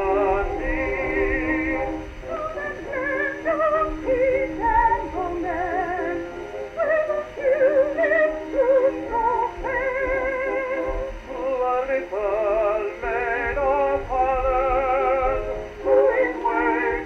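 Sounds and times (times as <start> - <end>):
old gramophone record with vibrato: 0.0 - 17.0.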